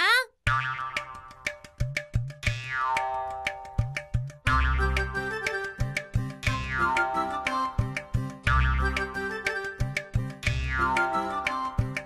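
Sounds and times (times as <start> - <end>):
woman speaking: 0.0 - 0.3
music with struck notes and bass: 0.5 - 12.0.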